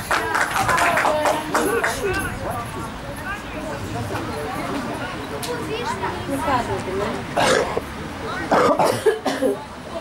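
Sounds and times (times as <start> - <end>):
people talking close by: 0.0 - 10.0
rough throat sounds: 7.4 - 7.8, 8.5 - 9.6.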